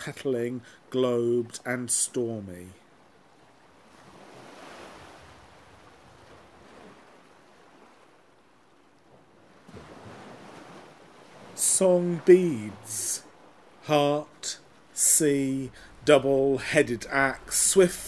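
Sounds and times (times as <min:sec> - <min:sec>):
sea surf on rocky shore: 0:00.0 - 0:18.0.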